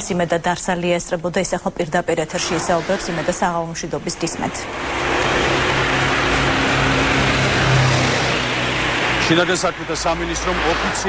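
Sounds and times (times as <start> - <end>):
engine humming and rushing: 2.1 - 11.0.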